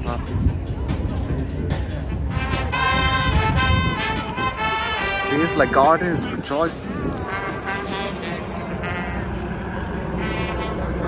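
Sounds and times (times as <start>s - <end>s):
faint crowd voices: 0.0s - 11.0s
helicopter flying overhead: 2.6s - 11.0s.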